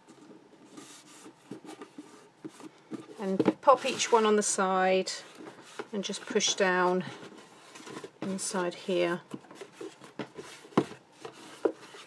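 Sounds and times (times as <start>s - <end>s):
card rubbing and rustling: 0.0s - 12.0s.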